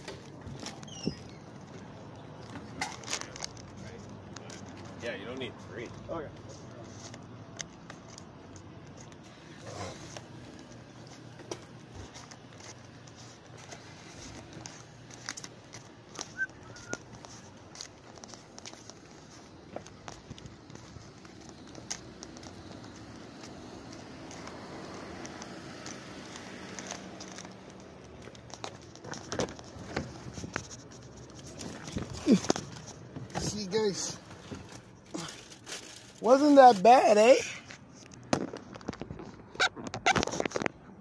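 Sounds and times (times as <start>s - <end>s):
footsteps on asphalt: 0.0s - 33.4s.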